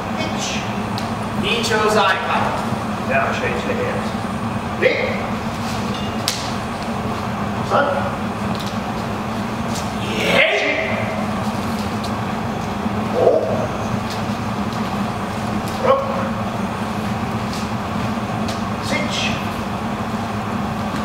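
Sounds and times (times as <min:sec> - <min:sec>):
low room hum: 0:00.0 - 0:21.0.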